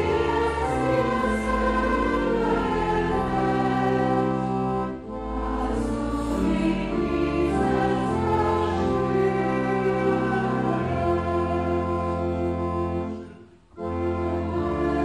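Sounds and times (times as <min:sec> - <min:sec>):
people singing: 0:00.0 - 0:04.3, 0:05.5 - 0:12.0
clarinets bass and organ hymn: 0:00.0 - 0:15.0.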